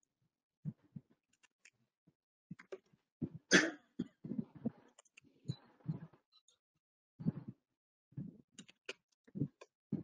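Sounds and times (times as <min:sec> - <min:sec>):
soft throat sounds: 0:03.2 - 0:04.9.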